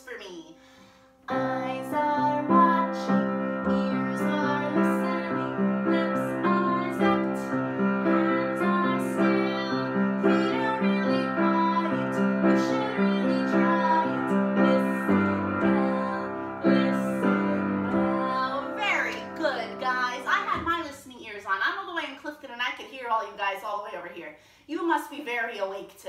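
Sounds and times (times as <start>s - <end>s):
upright piano chords: 1.2s - 20.9s
woman singing: 1.3s - 21.2s.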